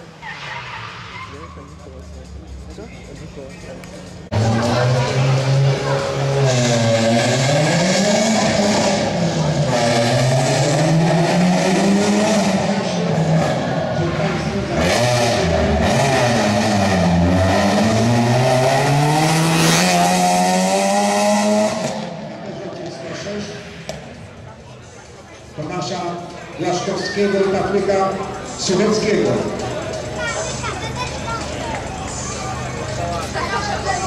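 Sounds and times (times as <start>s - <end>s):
rally car engine revving: 0.0s - 24.4s.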